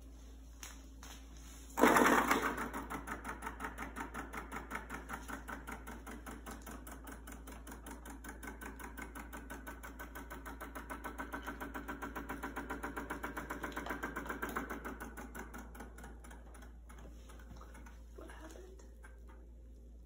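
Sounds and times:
small motor spinning with rattle: 1.8s - 18.4s.

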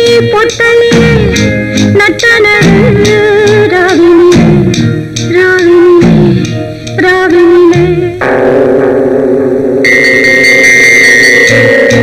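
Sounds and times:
film song instrumental music: 0.1s - 12.0s
steady high held tone: 8.2s - 12.0s.

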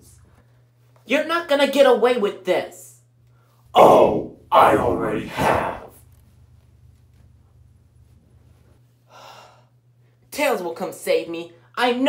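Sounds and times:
low steady hum: 0.0s - 12.0s
person breathing: 9.1s - 9.7s.

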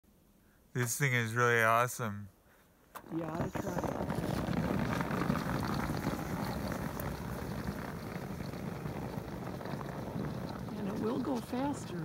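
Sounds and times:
tracked wheelchair crunching over snow: 3.2s - 12.0s.

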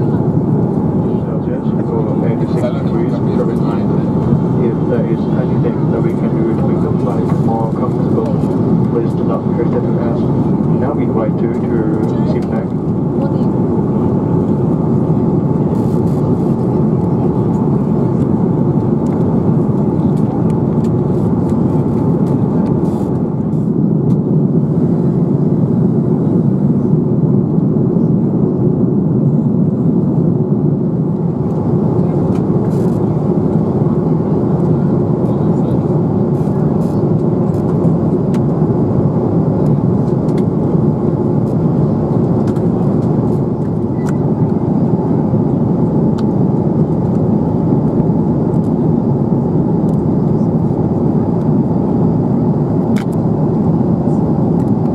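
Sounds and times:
aircraft cabin engine rush: 0.0s - 54.9s.

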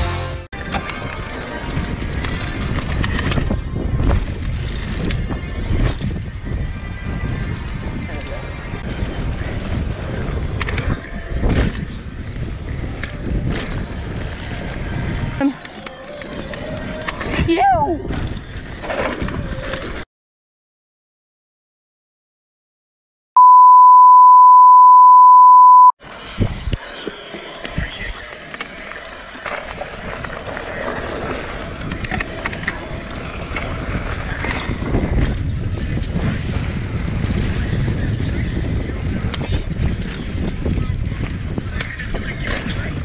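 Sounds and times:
wind buffeting microphone: 0.6s - 15.4s, 29.8s - 43.0s
steady electronic beep: 23.4s - 26.0s.

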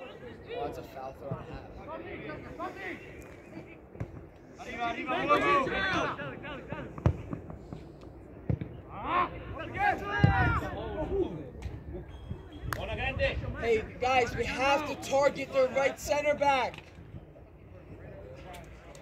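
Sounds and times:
voices shouting: 4.6s - 6.8s, 8.9s - 11.3s.

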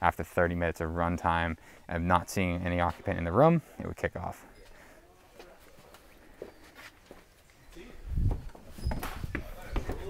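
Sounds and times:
footsteps on wooden stairs: 8.2s - 10.0s.

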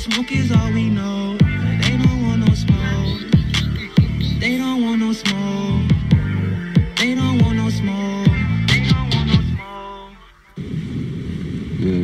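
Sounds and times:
song: 0.0s - 10.8s.

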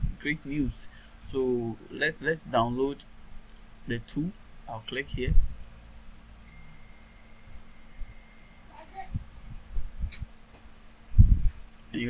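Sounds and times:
faint steady hum: 0.0s - 12.0s
soft low thumps: 9.0s - 11.6s.

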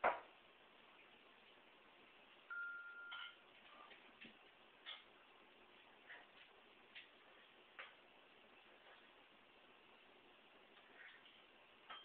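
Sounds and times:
short electronic beep: 2.5s - 3.4s.

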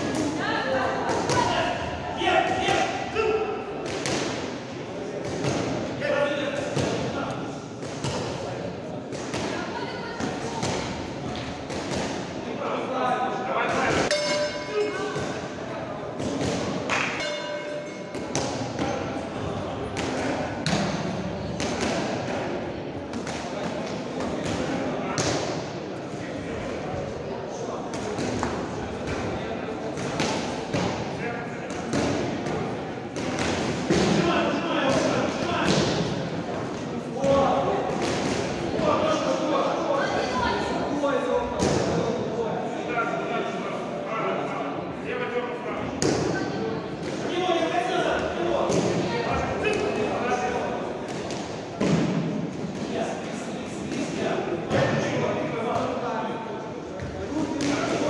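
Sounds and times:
people shouting in a hall: 16.2s - 19.3s.

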